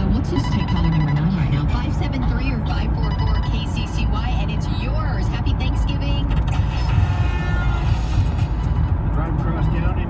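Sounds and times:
vehicle rumble inside cab: 0:00.0 - 0:10.0.

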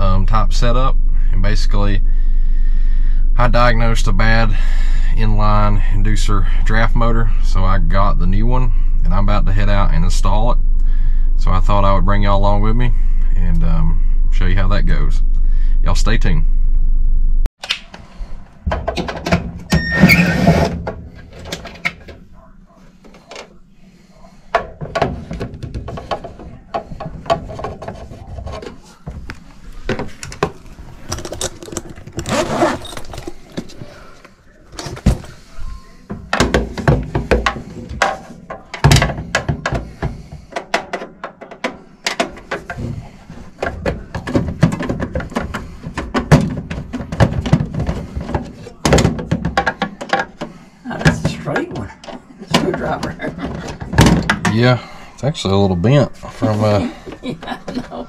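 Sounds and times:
metal parts knocking: 0:29.9 - 0:34.0.

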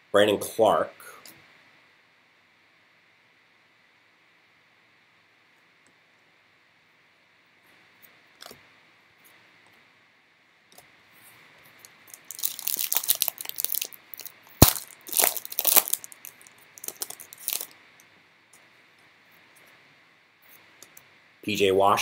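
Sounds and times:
wrapper tearing and crinkling: 0:12.0 - 0:17.7.

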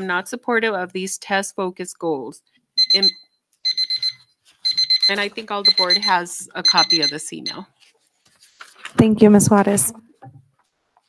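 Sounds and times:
electronic timer beeping: 0:02.8 - 0:07.7.

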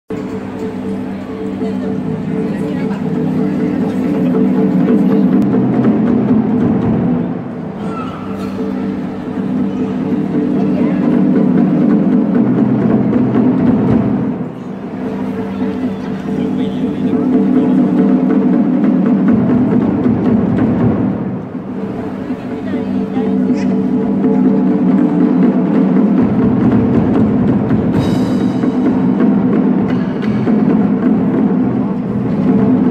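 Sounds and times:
barrel drums rolling: 0:00.1 - 0:32.9.

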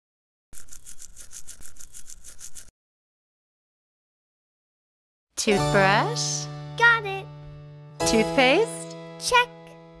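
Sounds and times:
toothbrush scrubbing teeth: 0:00.6 - 0:02.7.

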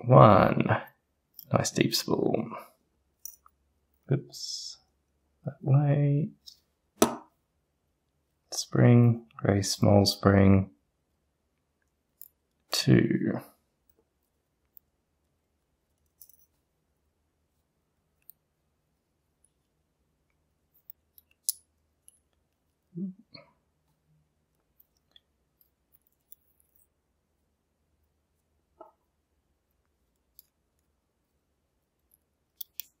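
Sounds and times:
small metal clicks: 0:15.9 - 0:16.5, 0:20.8 - 0:22.5, 0:32.0 - 0:33.0.

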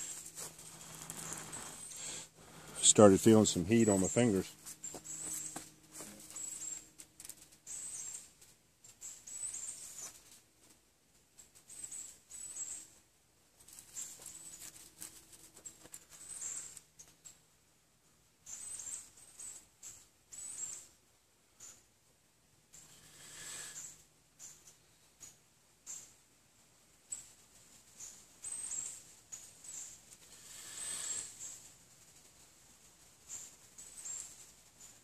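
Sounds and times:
dry pine needles crackling: 0:00.0 - 0:17.4, 0:27.0 - 0:35.0.

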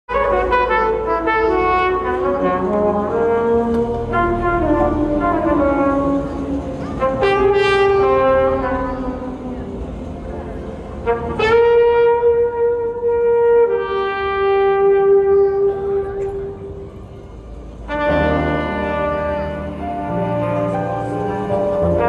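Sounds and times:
jazz trumpet ballad: 0:00.1 - 0:22.0.

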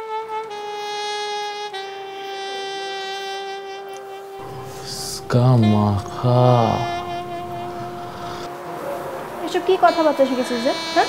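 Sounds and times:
long held horn-like note: 0:00.0 - 0:11.0
low rumble: 0:04.4 - 0:08.5.

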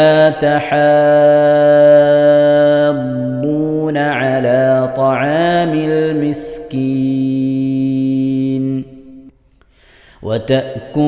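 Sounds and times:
man reciting melodically: 0:00.0 - 0:09.3, 0:10.0 - 0:11.0.

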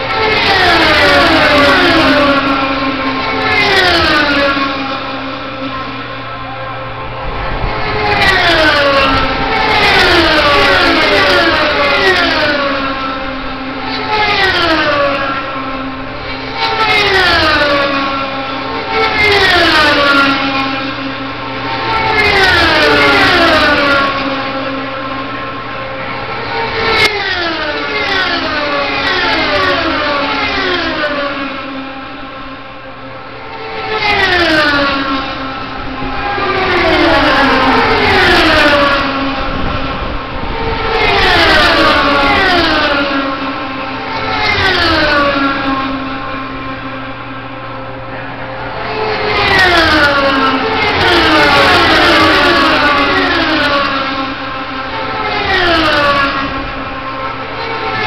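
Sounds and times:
race cars passing at speed: 0:00.0 - 0:58.0.

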